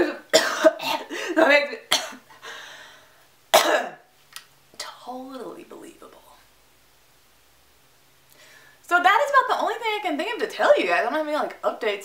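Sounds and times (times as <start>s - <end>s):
woman coughing: 0.0s - 2.3s, 3.6s - 4.1s
breathy exhale: 2.4s - 3.2s, 8.4s - 8.8s.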